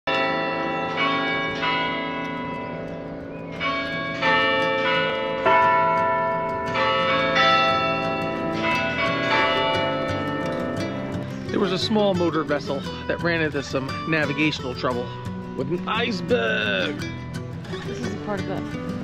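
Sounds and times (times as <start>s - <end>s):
carillon bells playing a tune: 0.1s - 13.1s.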